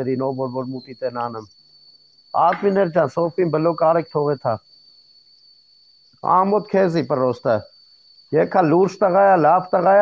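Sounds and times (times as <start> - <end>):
man speaking: 0.0 - 1.5, 2.4 - 4.6, 6.2 - 7.7, 8.4 - 10.0
faint high-pitched whine: 0.0 - 10.0.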